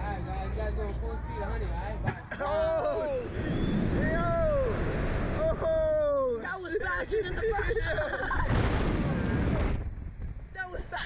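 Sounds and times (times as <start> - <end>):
wind rushing over microphone: 3.0 - 6.4, 7.0 - 10.9.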